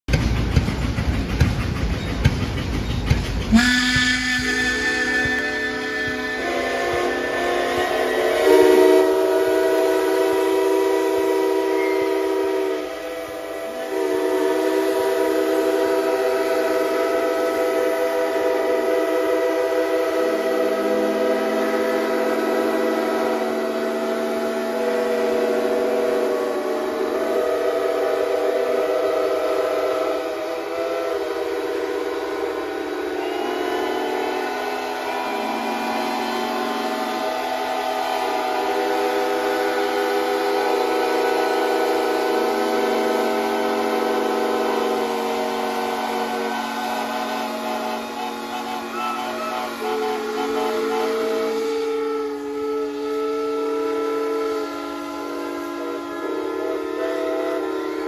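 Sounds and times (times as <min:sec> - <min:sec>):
steam engine whistles blowing: 0:00.1 - 0:58.0.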